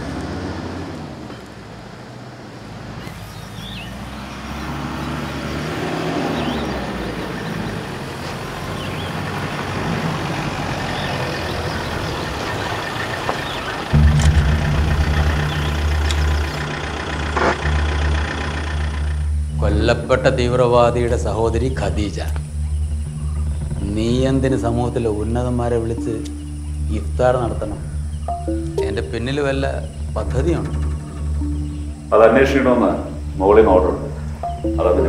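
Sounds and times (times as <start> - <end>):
vehicle engine running: 3.1 - 35.0
loud low rumble: 13.9 - 35.0.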